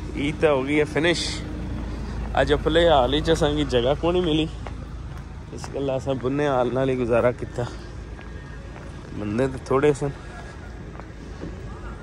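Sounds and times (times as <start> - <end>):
outdoor street noise: 0.0 - 12.0.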